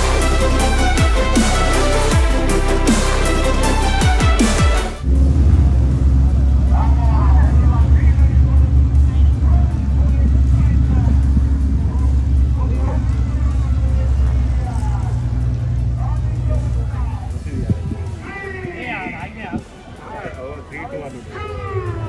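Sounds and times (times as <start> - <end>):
aircraft engine drone: 4.9 - 18.4
faint voices: 6.5 - 22.0.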